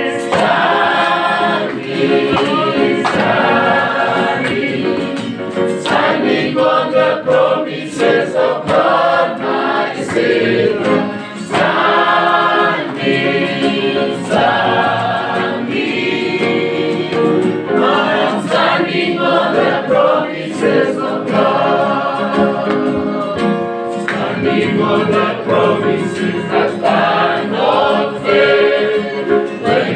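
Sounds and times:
choir singing gospel: 0:00.0 - 0:29.9.

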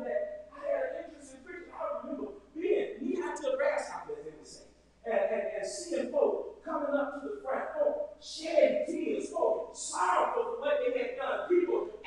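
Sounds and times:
man preaching into a microphone: 0:00.0 - 0:12.0.

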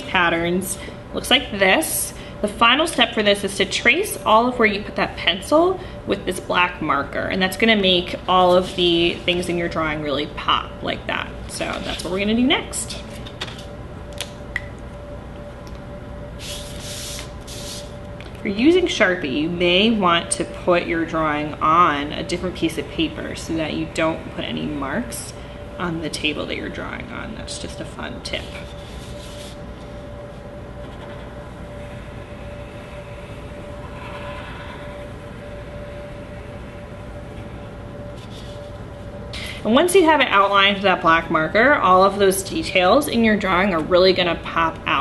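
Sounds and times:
room hum and rumble: 0:00.0 - 0:45.0
marker strokes on paper: 0:16.4 - 0:17.9, 0:28.4 - 0:29.6
paper sliding over table: 0:28.5 - 0:29.6.

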